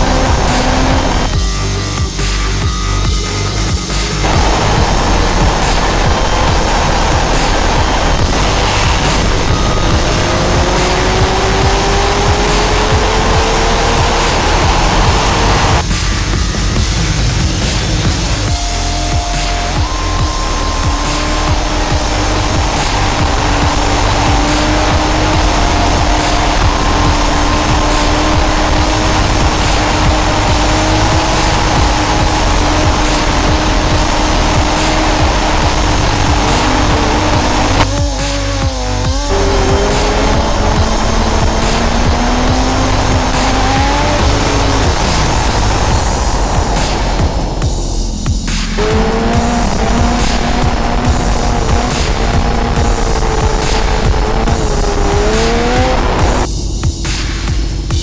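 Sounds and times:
motorcycle engine pulling: 0.0s - 2.3s, 3.1s - 16.1s, 16.7s - 58.0s
music playing: 0.0s - 58.0s
wind rush: 4.2s - 15.9s, 39.0s - 57.0s.

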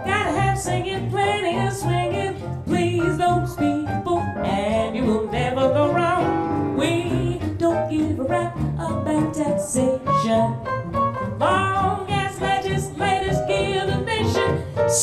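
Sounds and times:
double bass: 0.0s - 15.0s
woman singing jazz: 0.0s - 15.0s.

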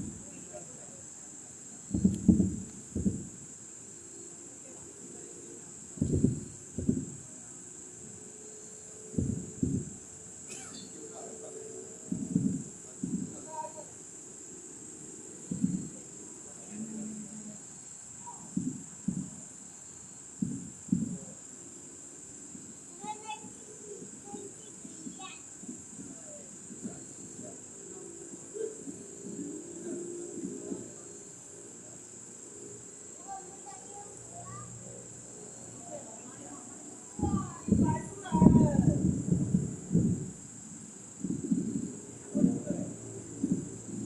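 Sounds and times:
distant fireworks booming: 0.0s - 1.0s, 1.8s - 3.5s, 4.6s - 8.4s, 9.0s - 14.0s, 15.3s - 19.7s, 20.3s - 31.1s, 37.1s - 44.0s
steady high-pitched hiss: 0.0s - 44.0s.

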